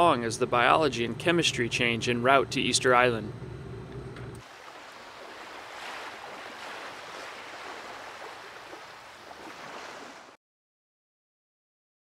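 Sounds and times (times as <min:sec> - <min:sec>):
ocean waves washing: 0:04.4 - 0:10.4.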